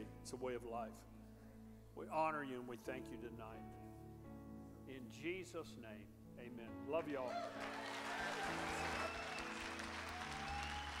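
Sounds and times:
audience applause: 0:07.3 - 0:11.0.

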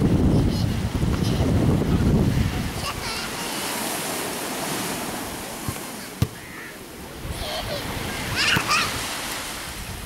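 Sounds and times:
small waves washing ashore: 0:00.0 - 0:10.0.

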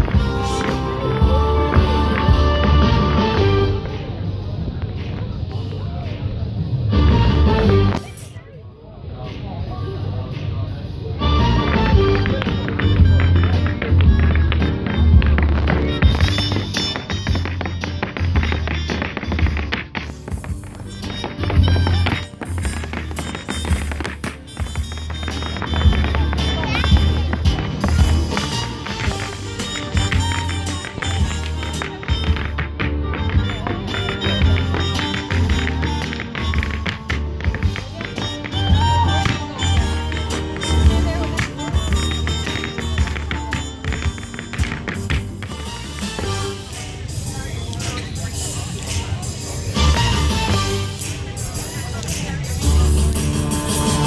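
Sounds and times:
band playing dance music: 0:00.0 - 0:05.2, 0:06.8 - 0:08.3, 0:11.2 - 0:54.0
hard shoes tapping on wooden board: 0:11.7 - 0:46.4.

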